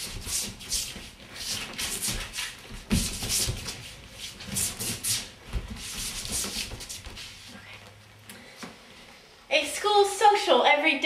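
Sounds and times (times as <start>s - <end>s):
soft footfall thuds: 0.0s - 7.5s
feet sliding on wooden floor: 0.0s - 9.2s.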